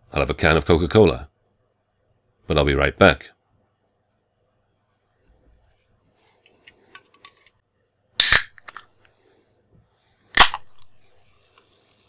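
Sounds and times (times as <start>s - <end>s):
can ring-pull cracking open: 8.2s - 8.8s, 10.4s - 10.9s.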